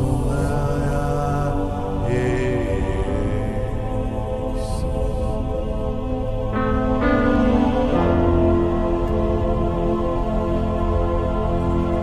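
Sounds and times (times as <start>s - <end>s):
sustained keyboard chords: 0.0s - 12.0s.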